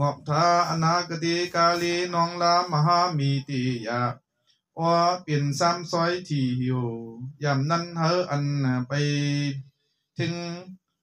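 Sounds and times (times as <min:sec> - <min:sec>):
man chanting melodically: 0:00.0 - 0:10.9.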